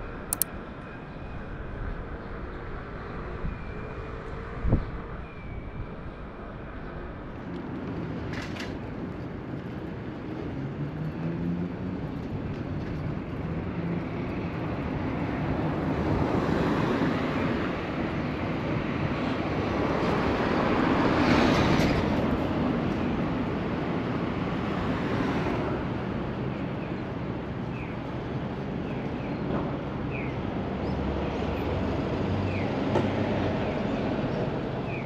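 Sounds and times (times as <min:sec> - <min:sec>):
street traffic road rumble: 0:00.0 - 0:35.0.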